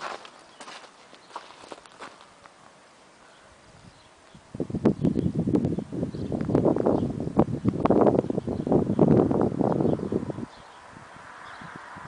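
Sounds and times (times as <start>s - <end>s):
footsteps on dirt and gravel: 0.0s - 2.6s.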